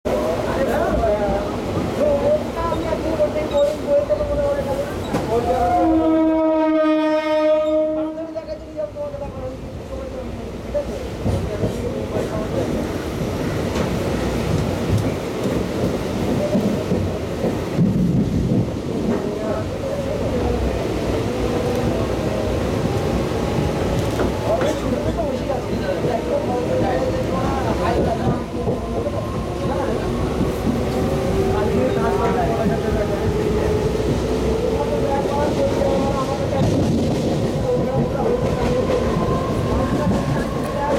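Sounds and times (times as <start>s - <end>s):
train carriage rumbling: 0.0s - 40.9s
train horn blast: 5.7s - 8.3s.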